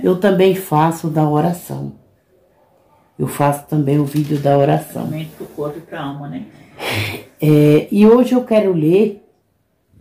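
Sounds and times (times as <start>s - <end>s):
sharp intake of breath: 6.7s - 7.4s.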